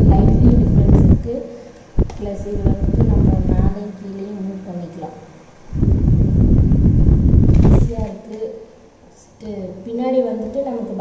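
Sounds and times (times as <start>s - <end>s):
fan air buffeting microphone: 0.0s - 11.0s.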